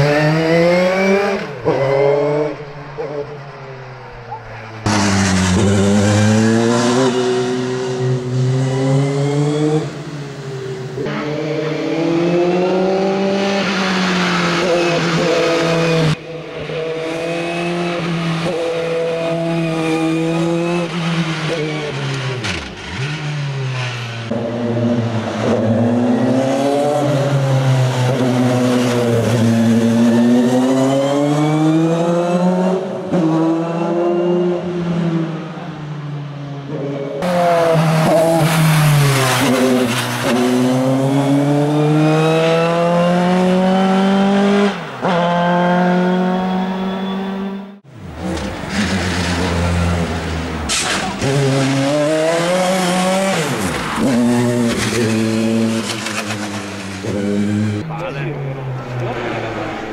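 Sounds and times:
racing car engine revving: 0.0 - 3.6, 4.7 - 35.8, 36.6 - 59.9.

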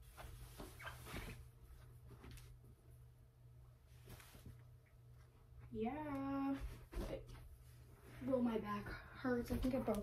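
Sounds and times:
bedding rustling: 0.0 - 3.1, 3.7 - 10.0.

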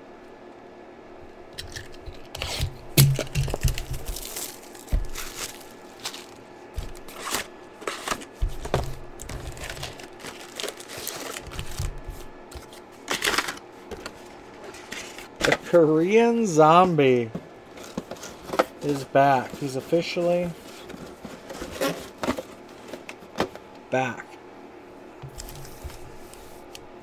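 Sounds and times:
packaging tearing and crinkling: 1.6 - 13.6.

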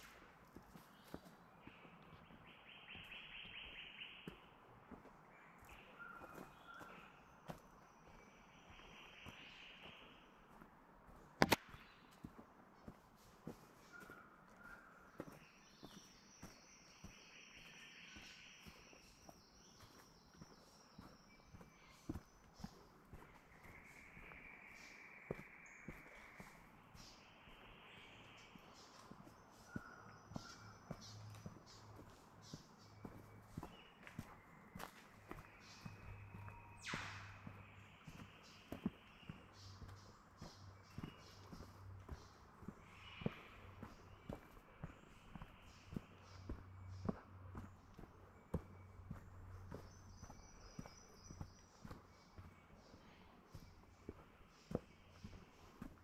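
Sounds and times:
footsteps on dirt track: 0.0 - 56.0
sharp click: 11.4 - 11.7.

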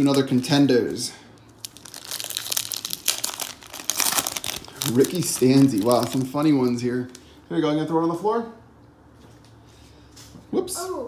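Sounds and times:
foil wrapper crinkling and tearing: 0.0 - 7.3.

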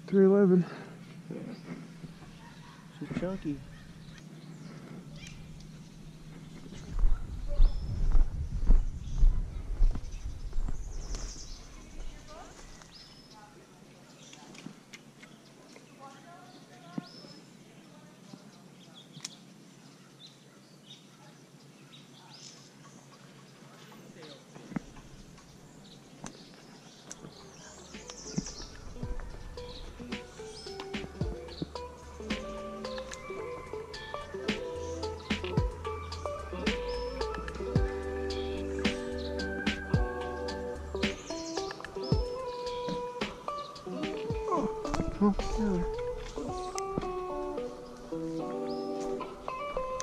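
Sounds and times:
rumbling bumps on microphone: 6.4 - 11.4
high bird chirps: 27.0 - 50.0
music: 28.0 - 50.0.

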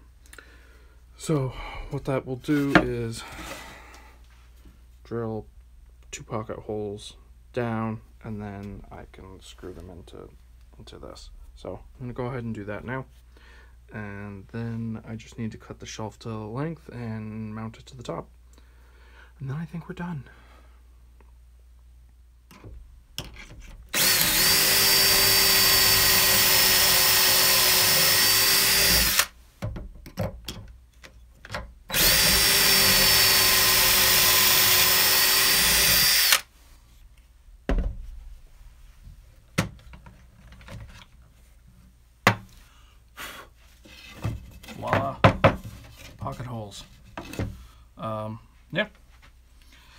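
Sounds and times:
cordless drill boring into wood: 23.9 - 29.4, 31.9 - 36.5
knocks and clicks of handling: 29.6 - 31.8.

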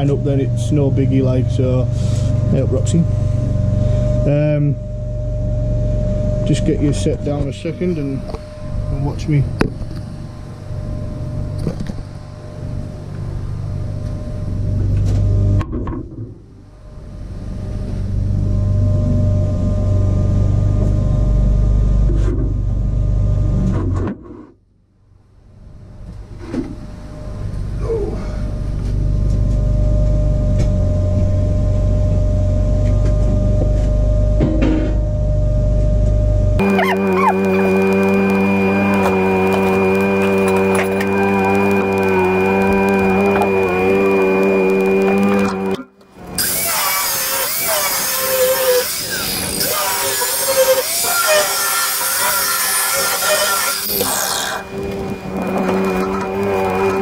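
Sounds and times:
welder humming and buzzing: 0.0 - 15.7, 28.6 - 57.0.

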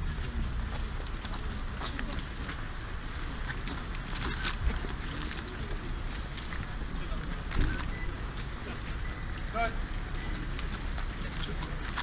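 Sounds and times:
soldiers marching on pavement: 0.0 - 12.0.

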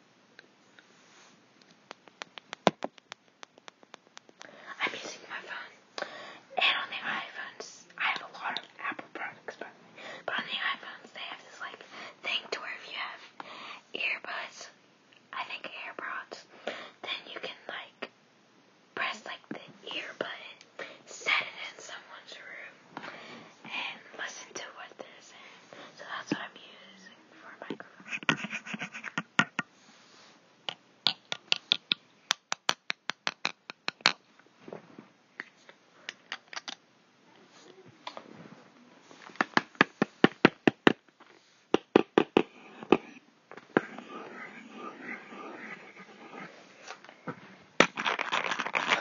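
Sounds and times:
girl whispering: 4.6 - 13.2, 13.9 - 18.1, 19.0 - 22.8, 23.7 - 28.0, 43.8 - 46.6.

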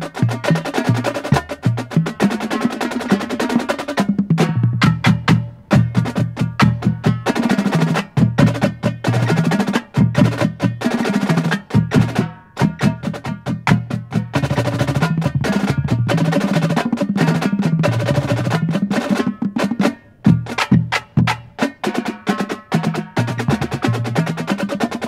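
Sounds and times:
marching drumline playing: 0.0 - 25.0.

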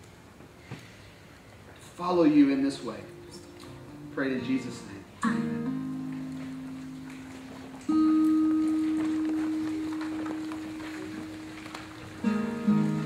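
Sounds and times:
guitar notes ringing: 2.4 - 13.0.

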